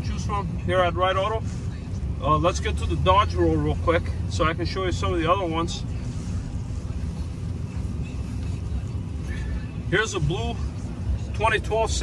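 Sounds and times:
truck engine low rumble: 0:00.0 - 0:12.0.

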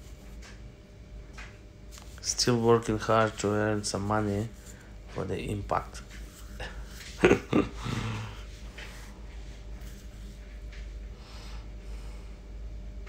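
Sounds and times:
low steady hum: 0:00.0 - 0:13.0
man snorting laugh: 0:06.6 - 0:08.4.

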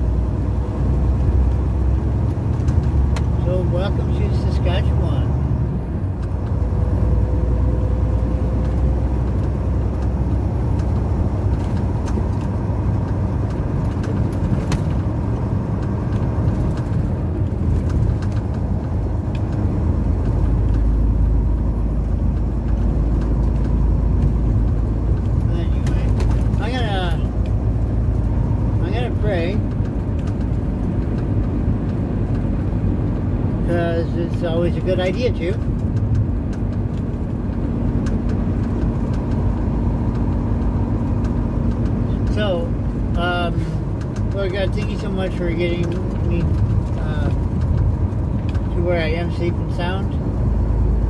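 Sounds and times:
truck engine rumble in cab: 0:00.0 - 0:51.0.

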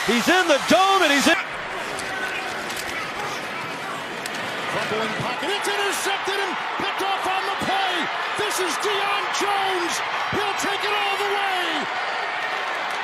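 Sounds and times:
stadium crowd noise: 0:00.0 - 0:13.0
announcer shouting excitedly: 0:05.4 - 0:11.9.

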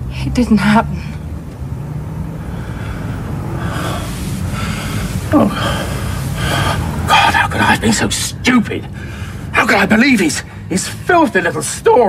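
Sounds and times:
steady low hum: 0:00.0 - 0:11.8
person gasping and breathing heavily: 0:02.4 - 0:07.1.

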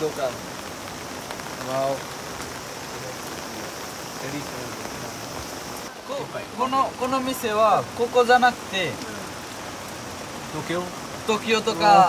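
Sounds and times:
rain falling on umbrella: 0:00.0 - 0:12.0.

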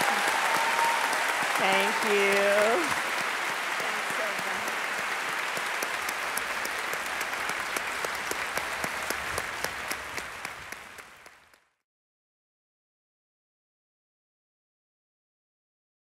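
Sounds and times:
audience applauding: 0:00.0 - 0:11.8.

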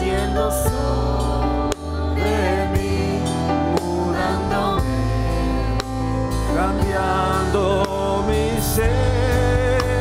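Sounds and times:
live band music: 0:00.0 - 0:10.0
person singing: 0:00.0 - 0:10.0.

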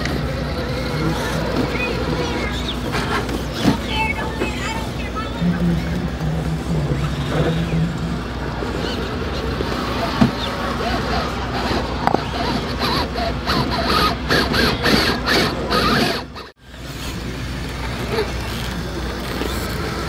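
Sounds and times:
electric motor and gears whining: 0:00.0 - 0:20.0
tyres scraping on stone: 0:08.7 - 0:17.2.

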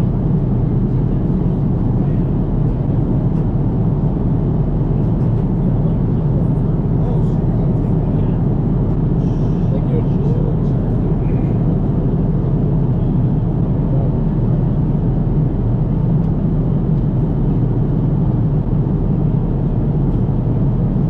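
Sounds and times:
airliner cabin rumble: 0:00.0 - 0:21.0.

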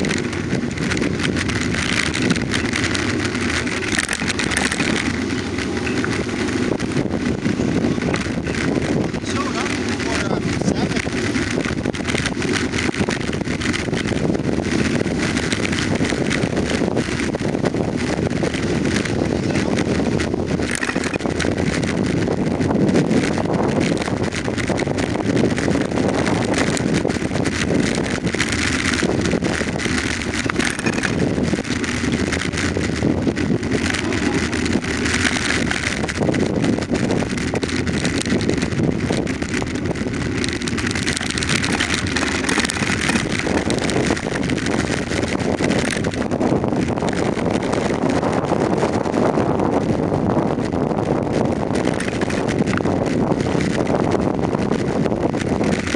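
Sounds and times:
bicycle rolling over rough asphalt: 0:00.0 - 0:55.9
small rattles and bumps: 0:00.0 - 0:55.9
wind on microphone: 0:00.0 - 0:55.9.

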